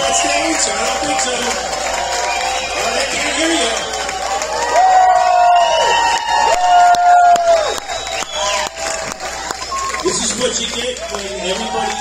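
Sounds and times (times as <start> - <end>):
crowd cheering and whooping: 0.0 - 12.0.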